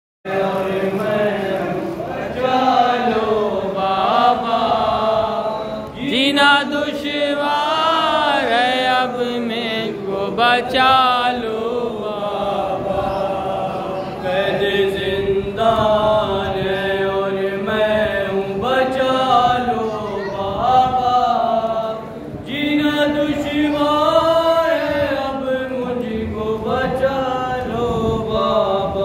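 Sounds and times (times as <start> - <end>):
men singing a lament: 0.3 - 29.0.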